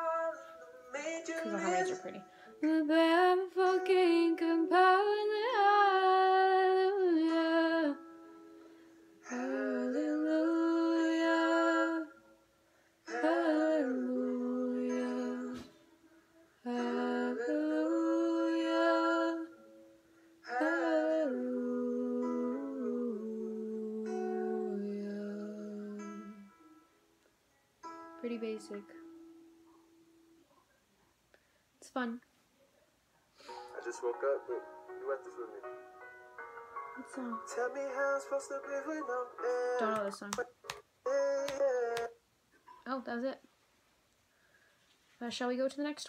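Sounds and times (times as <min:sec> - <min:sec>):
woman singing slow melody: 0:00.0 - 0:08.2, 0:09.2 - 0:12.2, 0:13.1 - 0:15.9, 0:16.6 - 0:19.7, 0:20.4 - 0:26.7, 0:37.0 - 0:37.9, 0:39.4 - 0:40.6.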